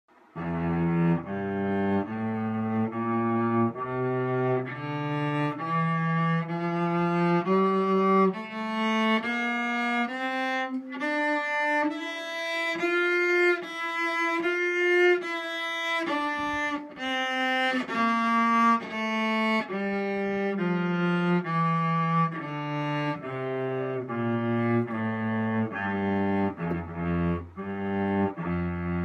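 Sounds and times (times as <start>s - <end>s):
cello playing ascending scale: 0.3s - 29.0s.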